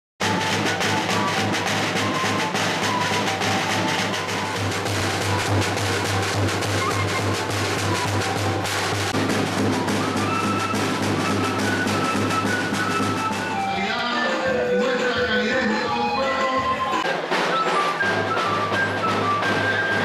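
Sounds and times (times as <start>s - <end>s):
flutes playing a melody: 0.2s - 20.0s
rolling snare drum: 0.2s - 20.0s.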